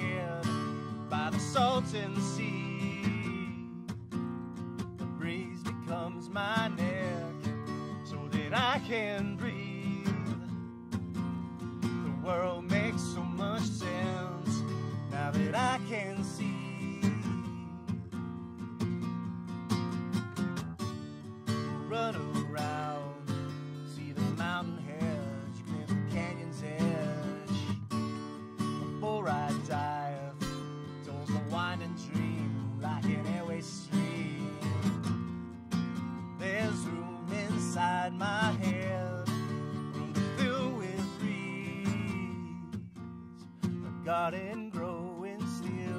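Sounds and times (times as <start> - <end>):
man singing: 0.0 - 3.8, 5.2 - 10.5, 12.0 - 17.9, 21.5 - 27.8, 28.8 - 35.1, 36.4 - 42.9, 44.0 - 45.9
acoustic guitar strumming: 0.0 - 45.9.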